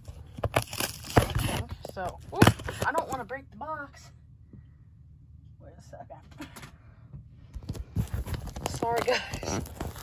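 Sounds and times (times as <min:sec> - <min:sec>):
cardboard scraping and crinkling: 0:00.0 - 0:03.2, 0:07.6 - 0:10.0.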